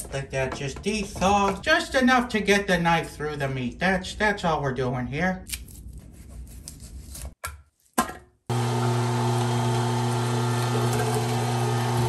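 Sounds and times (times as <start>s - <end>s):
electric meat grinder humming: 8.5s - 12.0s.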